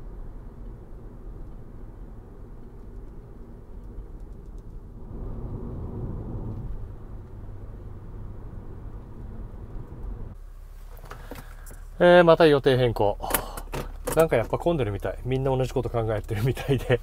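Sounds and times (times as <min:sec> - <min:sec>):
car tyres and engine rumble: 0:00.0 - 0:17.0.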